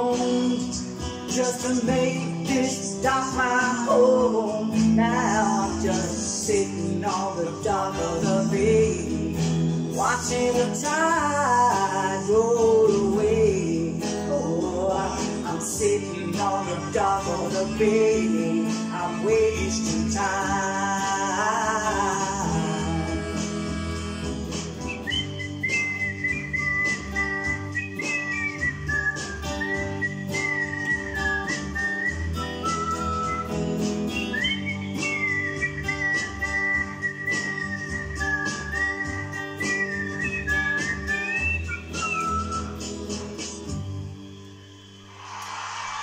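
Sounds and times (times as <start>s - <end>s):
electric guitar chords: 0.0s - 41.9s
person whistling a melody: 0.0s - 45.1s.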